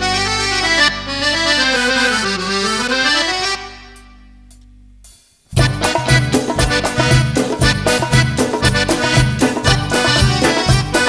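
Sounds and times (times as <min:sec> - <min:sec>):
piano accordion playing: 0:00.0 - 0:04.4, 0:05.6 - 0:11.0.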